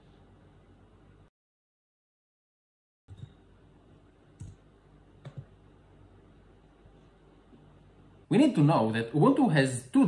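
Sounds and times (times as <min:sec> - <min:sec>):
keyboard and mouse clicks: 0:05.2 - 0:05.5.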